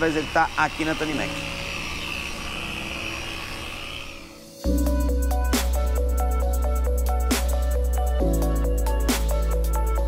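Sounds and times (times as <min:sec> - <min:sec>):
electric polisher whining: 0:00.0 - 0:05.0.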